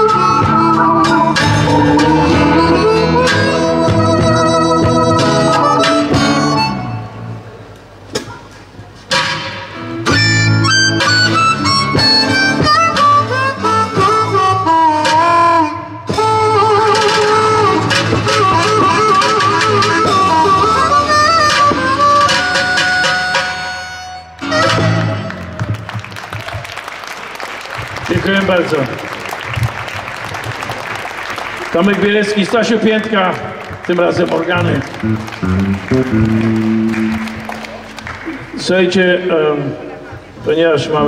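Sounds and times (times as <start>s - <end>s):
harmonica lead: 0.0s - 7.5s, 9.1s - 25.8s, 34.6s - 38.4s
acoustic guitar: 0.0s - 7.6s, 8.2s - 25.8s, 34.5s - 38.7s
keyboard playing: 0.0s - 7.7s, 9.8s - 26.3s, 31.1s - 38.6s
bass guitar: 0.0s - 8.1s, 9.1s - 26.2s, 34.2s - 38.6s
audience applause: 24.9s - 38.7s.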